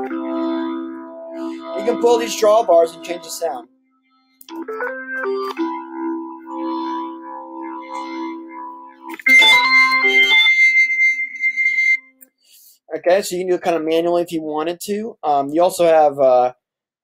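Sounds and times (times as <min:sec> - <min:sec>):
organ playing held chords: 0:00.0 - 0:03.6
high held tone: 0:04.6 - 0:12.4.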